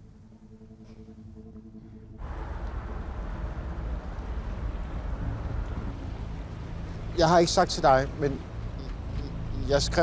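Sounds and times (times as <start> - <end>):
wind: 0.0 - 10.0
boat engine: 2.2 - 10.0.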